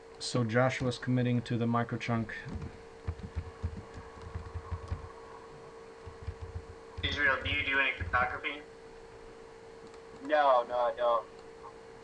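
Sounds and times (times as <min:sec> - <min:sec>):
steady low hum: 0:00.0 - 0:12.0
soft low thumps: 0:02.5 - 0:05.2, 0:06.0 - 0:08.2.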